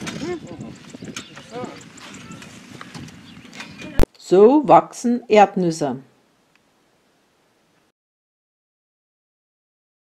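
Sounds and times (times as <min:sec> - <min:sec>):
indistinct voices talking: 0:00.0 - 0:06.0.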